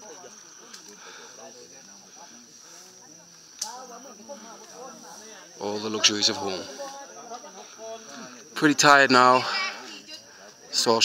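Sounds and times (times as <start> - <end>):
faint voices talking: 0.0 - 11.0
forest insects droning: 0.0 - 11.0.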